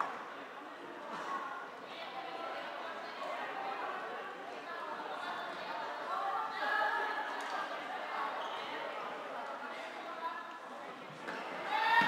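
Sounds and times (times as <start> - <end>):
players shouting in a hall: 11.6 - 12.0.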